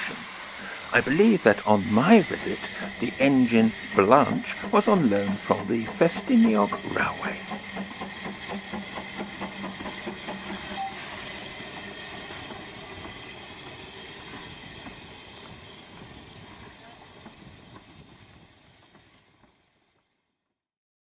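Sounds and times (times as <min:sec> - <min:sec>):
steam hiss: 0:00.0 - 0:19.9
steam locomotive chuffing: 0:00.0 - 0:20.2.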